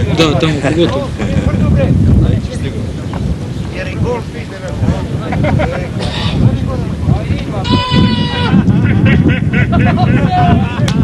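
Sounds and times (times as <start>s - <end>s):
high drawn-out call: 6.0s - 6.5s, 7.6s - 10.5s.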